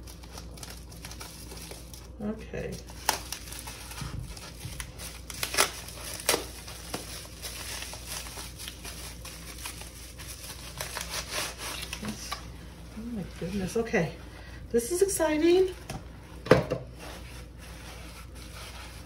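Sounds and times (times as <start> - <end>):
plastic and paper crinkling: 0.0 - 19.0.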